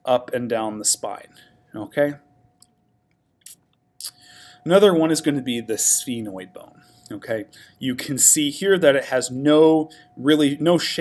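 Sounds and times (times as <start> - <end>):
man speaking: 0.0 - 2.2, 4.0 - 11.0
faint steady hum: 0.0 - 11.0.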